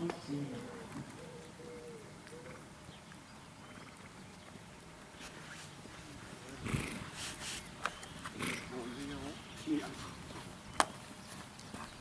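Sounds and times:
horse trotting on sand: 5.7 - 12.0
short irregular horse sounds: 6.4 - 7.6.

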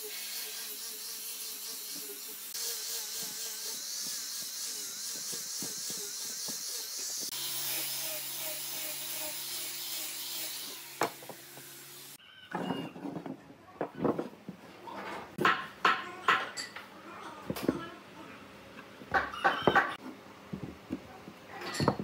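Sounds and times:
angle grinder sanding wood: 0.0 - 12.2.

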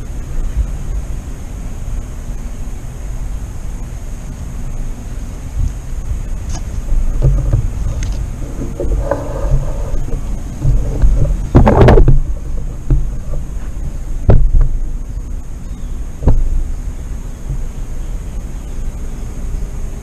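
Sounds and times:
wind buffeting microphone: 0.0 - 19.1.

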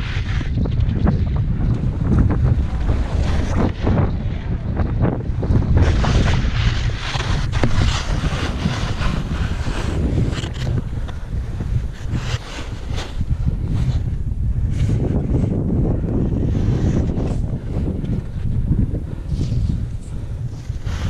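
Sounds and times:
skis scraping over snow: 0.0 - 4.2, 4.8 - 21.0
wind buffeting microphone: 0.0 - 21.0.

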